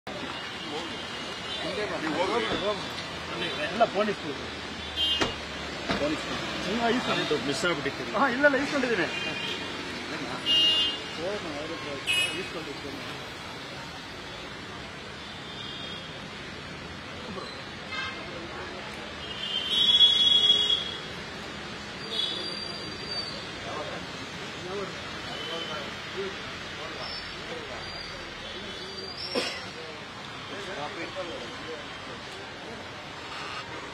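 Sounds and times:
people talking: 0.6s - 4.4s.

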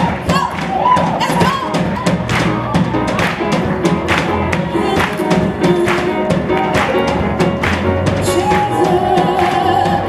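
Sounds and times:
drum kit hits: 0.0s - 10.0s
gospel band playing: 0.0s - 10.0s.

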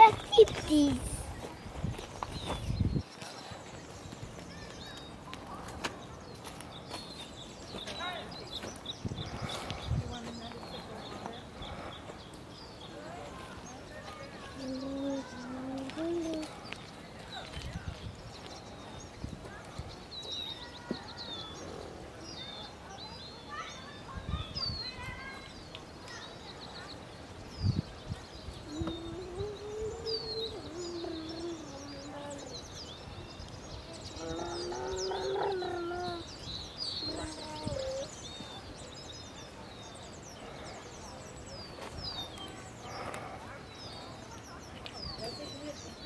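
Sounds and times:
small birds chirping: 0.0s - 46.0s.

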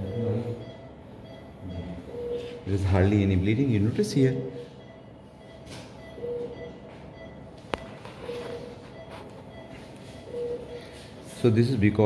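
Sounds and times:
operating room equipment noise: 0.0s - 12.0s.

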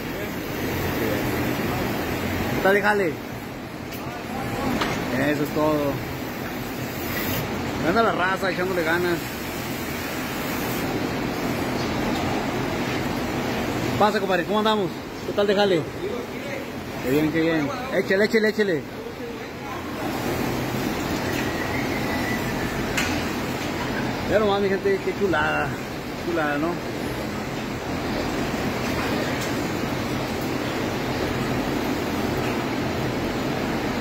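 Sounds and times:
milking machinery hum and hiss: 0.0s - 34.0s
faint thin whistle: 21.2s - 22.7s.

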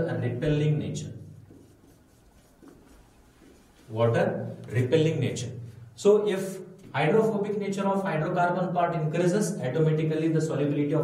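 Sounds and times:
marker scratching on whiteboard: 1.3s - 3.9s.

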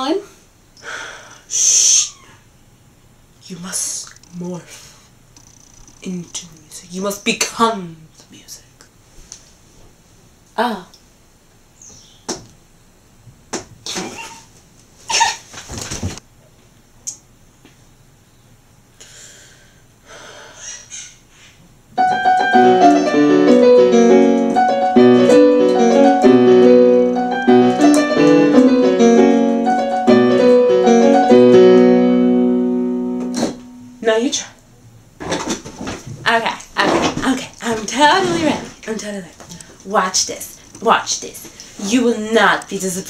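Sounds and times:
electronic keyboard melody: 21.9s - 34.0s.

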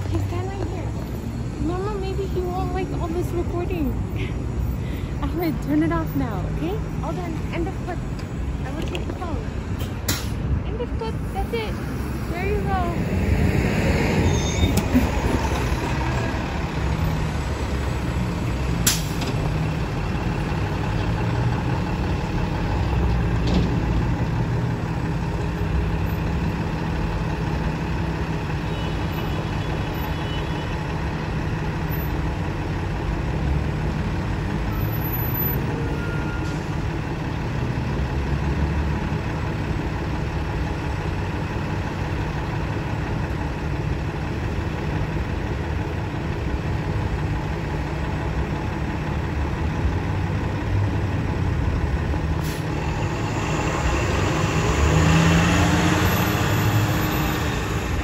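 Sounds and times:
bus engine idling and revving: 0.0s - 58.0s
street traffic: 0.0s - 58.0s.

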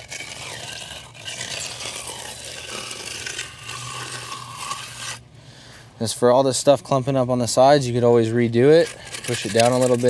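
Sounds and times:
trowel scraping wet concrete: 0.0s - 5.2s, 8.5s - 10.0s.

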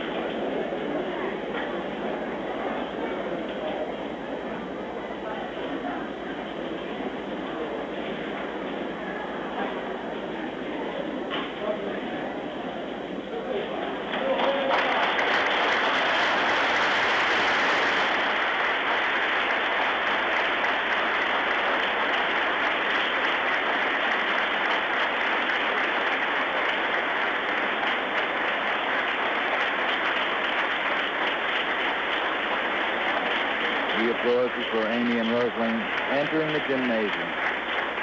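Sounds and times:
audience applause: 5.2s - 38.0s.

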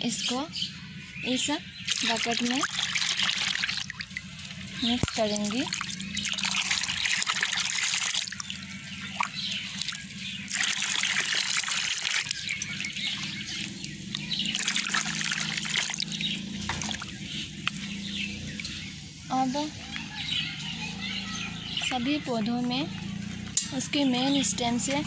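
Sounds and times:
water pouring into tub: 1.9s - 17.4s.

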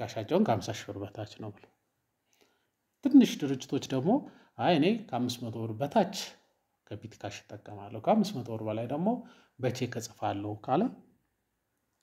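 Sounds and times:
person speaking: 0.0s - 1.8s, 2.9s - 11.2s.

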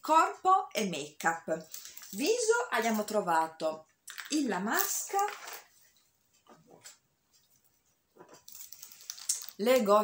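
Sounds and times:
rustling packaging: 1.5s - 3.2s, 4.1s - 6.1s, 6.8s - 10.0s.

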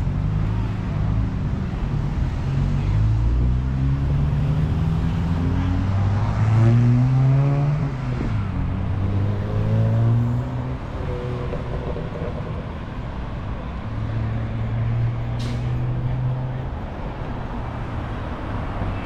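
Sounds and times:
passing vehicle engines humming: 0.0s - 19.0s.

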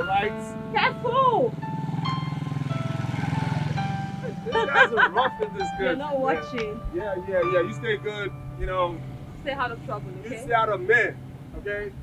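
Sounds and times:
motorcycle riding past: 0.0s - 12.0s.

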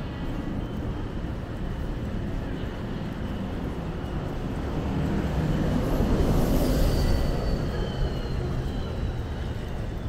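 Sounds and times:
low rumble of city traffic: 0.0s - 10.0s.

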